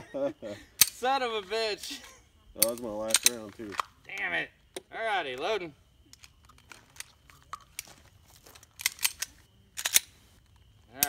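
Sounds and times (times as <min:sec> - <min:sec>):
pistol reloading clicks and rattles: 0:02.6 - 0:03.9, 0:06.1 - 0:10.2.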